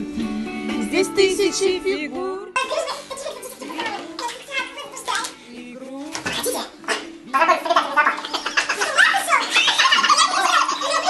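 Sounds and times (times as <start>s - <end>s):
people talking: 2.6s - 5.4s, 7.3s - 11.0s.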